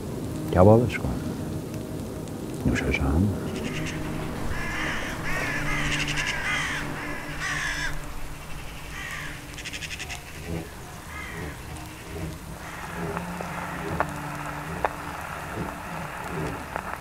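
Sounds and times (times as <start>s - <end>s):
steady low hum: 0.0s - 17.0s
harsh cawing bird calls: 3.4s - 17.0s.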